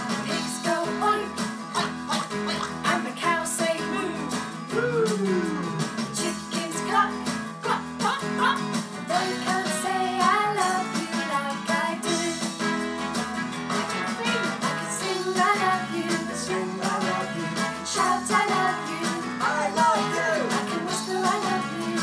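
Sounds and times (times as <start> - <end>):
people singing: 1.8 - 5.1, 9.1 - 12.7, 14.9 - 22.0
strummed acoustic guitar: 7.0 - 21.7.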